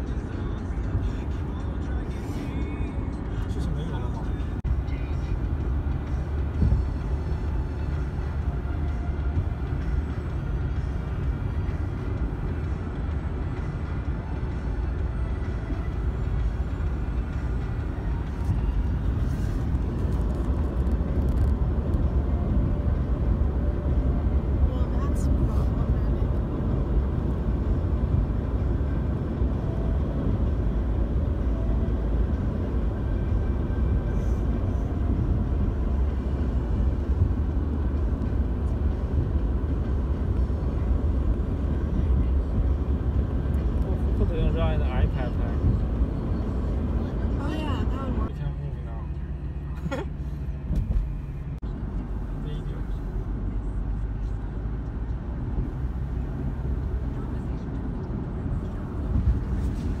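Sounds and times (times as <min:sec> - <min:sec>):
road and engine rumble in car: 0:00.0 - 1:00.0.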